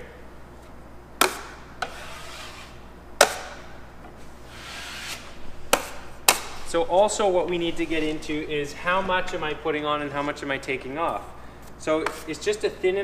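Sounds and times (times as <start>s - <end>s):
drywall knife scraping: 1.2s - 2.8s, 4.5s - 5.8s.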